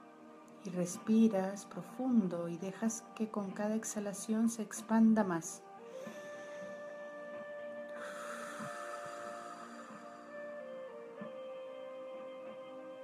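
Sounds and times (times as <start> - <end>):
soft hiss: 0.0 - 12.9
slow music with held notes: 0.0 - 13.0.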